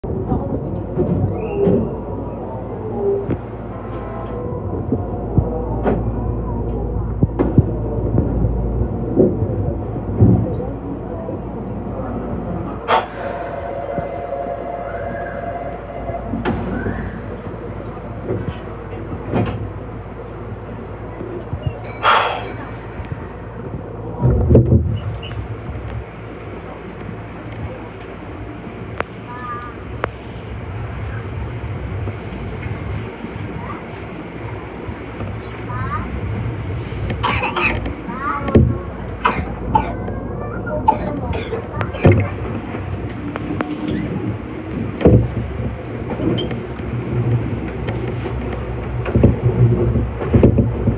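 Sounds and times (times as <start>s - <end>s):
electric train rumbling: 0.0s - 50.9s
station platform hum and murmur: 0.0s - 50.9s.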